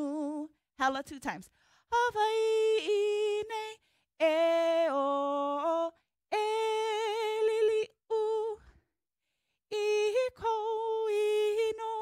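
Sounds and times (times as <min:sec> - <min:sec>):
woman singing unaccompanied: 0:00.0 - 0:08.7, 0:09.7 - 0:12.0.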